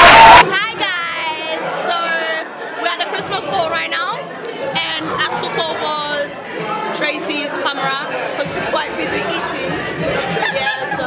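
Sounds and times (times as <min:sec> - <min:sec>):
chatter of people: 0:00.0 - 0:11.0
woman talking: 0:00.4 - 0:04.2, 0:04.8 - 0:06.4, 0:07.0 - 0:09.8.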